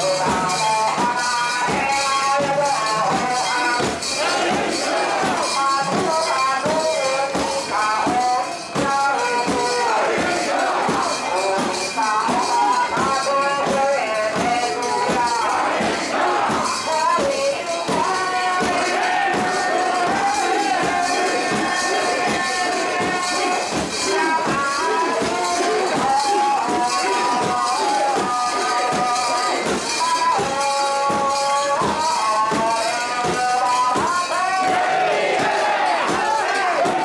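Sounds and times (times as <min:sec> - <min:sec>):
crowd chanting in unison: 0:00.0 - 0:37.0.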